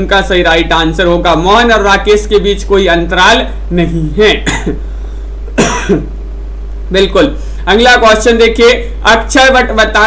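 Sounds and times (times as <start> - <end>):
low electrical hum: 0.0 - 10.0
man coughing: 4.3 - 4.9, 5.5 - 6.2.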